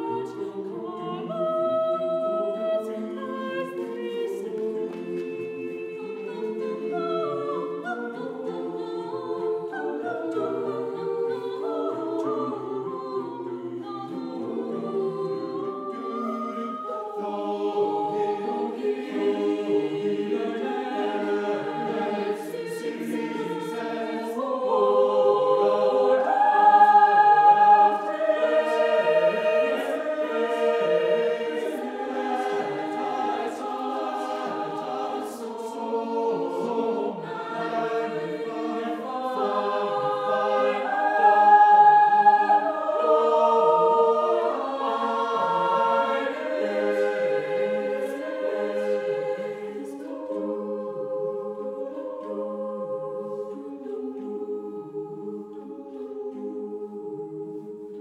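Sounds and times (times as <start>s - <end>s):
choir singing a cappella: 0.0s - 58.0s.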